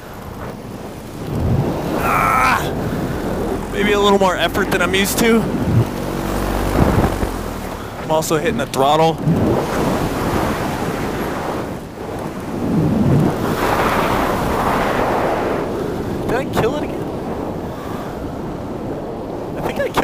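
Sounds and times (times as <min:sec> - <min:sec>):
wind rushing over microphone: 0:00.0 - 0:20.0.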